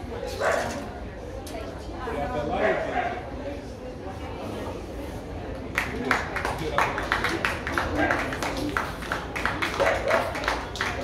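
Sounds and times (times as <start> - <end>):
crowd chatter: 0.0 - 11.0
dog barking: 9.8 - 10.3.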